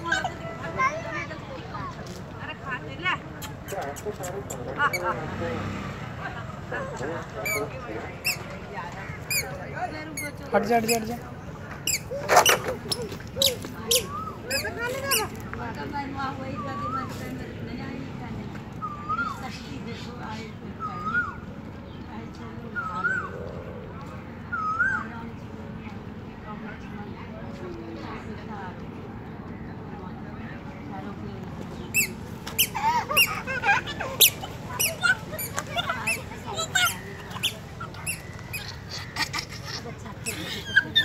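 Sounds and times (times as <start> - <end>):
puppies squeaking and whimpering: 11.8 - 15.3, 31.9 - 41.0.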